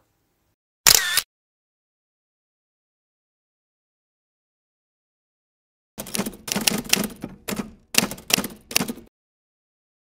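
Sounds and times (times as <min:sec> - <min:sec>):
typewriter key clacks: 0:06.0 - 0:09.1.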